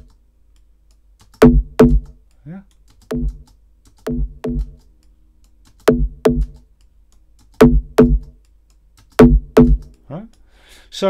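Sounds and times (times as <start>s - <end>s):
synth bass notes: 1.4s - 2.1s, 3.1s - 3.5s, 4.1s - 4.8s, 5.9s - 6.6s, 7.6s - 8.4s, 9.2s - 9.9s.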